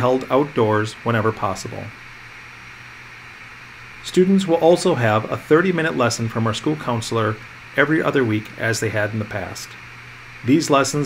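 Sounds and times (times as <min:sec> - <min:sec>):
faint low hum: 0:00.0 - 0:11.0
steady hiss: 0:00.0 - 0:11.0.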